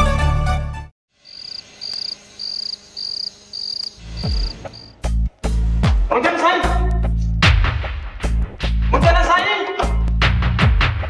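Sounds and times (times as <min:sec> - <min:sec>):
cricket chirping: 0:01.2 - 0:05.0.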